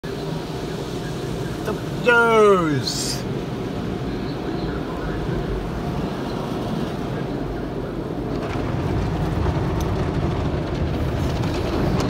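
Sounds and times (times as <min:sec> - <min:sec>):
car wash brushes and water: 0:00.0 - 0:12.0.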